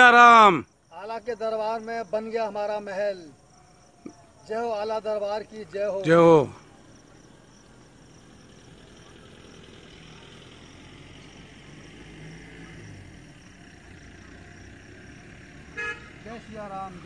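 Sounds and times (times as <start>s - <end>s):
distant low engine hum: 0.9s - 17.0s.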